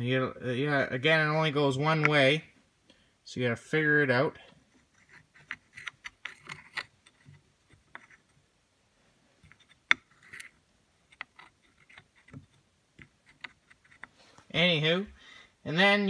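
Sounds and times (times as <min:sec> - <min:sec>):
metal parts clicking and tapping: 0:05.0 - 0:08.2.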